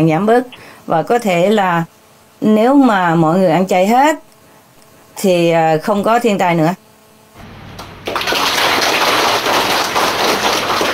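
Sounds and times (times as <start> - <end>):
audience applauding: 7.8 - 10.9.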